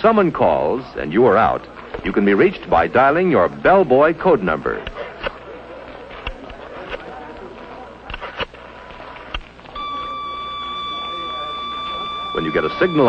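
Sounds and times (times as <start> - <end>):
steady electronic beep tone: 9.8 - 13.0.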